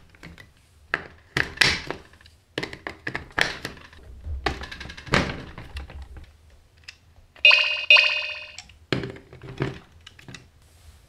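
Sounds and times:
loud electronic chime: 7.4 - 8.6.

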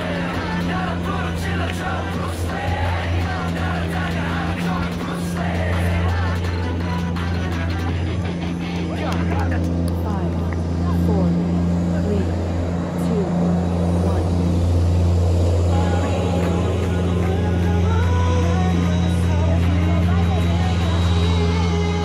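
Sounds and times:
people talking and calling out: 0.0 - 22.0
steady low hum: 0.0 - 22.0.

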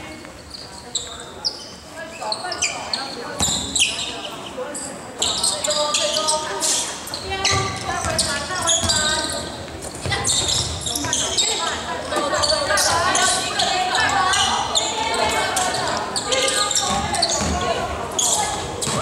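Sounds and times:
sharp court noises: 0.0 - 19.0
voices calling out echoing: 0.0 - 19.0
basketball bouncing on hardwood: 16.9 - 17.7.

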